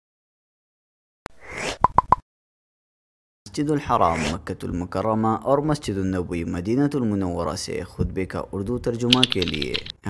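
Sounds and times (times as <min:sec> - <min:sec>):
sharp click: 0:09.1 - 0:10.0.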